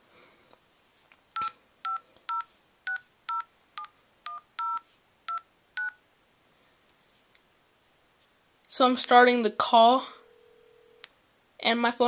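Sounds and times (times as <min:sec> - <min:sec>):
two-tone keypad beeps: 0:01.4 - 0:06.0.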